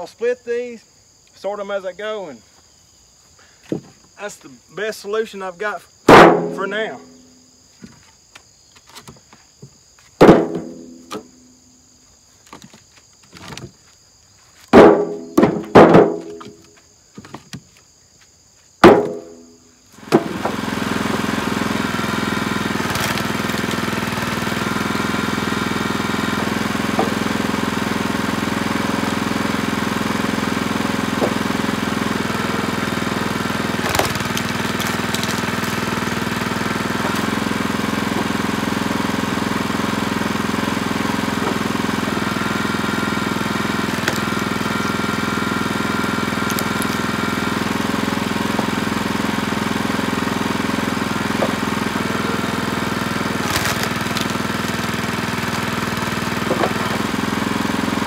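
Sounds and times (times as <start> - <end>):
sharp knocks: 6.1 - 6.6, 10.2 - 11.3, 14.7 - 16.6, 18.8 - 19.4
small gasoline engine running: 18.8 - 58.0.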